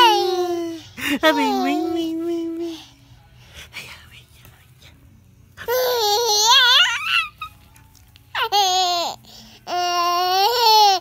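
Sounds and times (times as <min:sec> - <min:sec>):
whispered breathy voice: 0:01.9 - 0:05.1.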